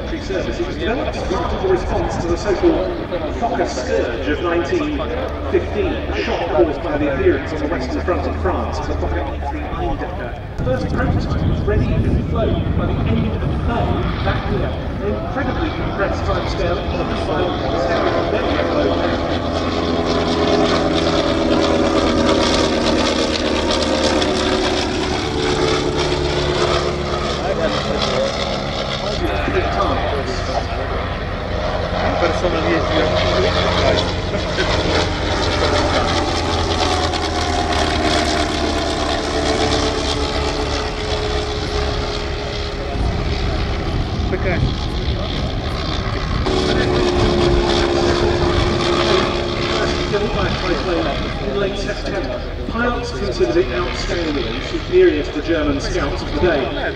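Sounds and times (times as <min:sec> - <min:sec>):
aircraft engine droning: 0:00.0 - 0:56.9
public address commentary: 0:00.0 - 0:56.9.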